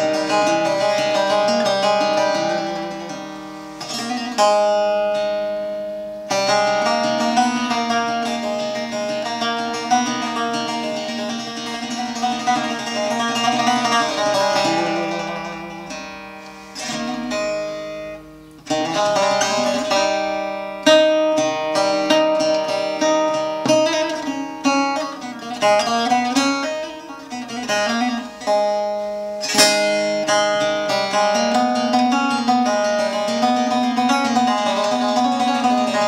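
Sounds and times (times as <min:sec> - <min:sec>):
lute strummed and plucked: 0:00.0 - 0:36.0.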